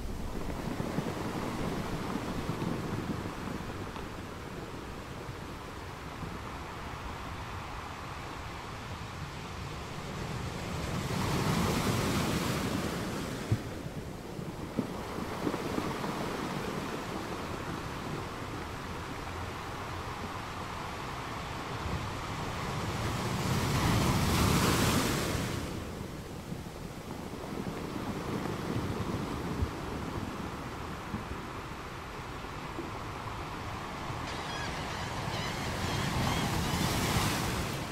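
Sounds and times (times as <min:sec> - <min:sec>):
steady surf wash: 0:00.0 - 0:37.9
waves surging and washing out: 0:00.0 - 0:37.9.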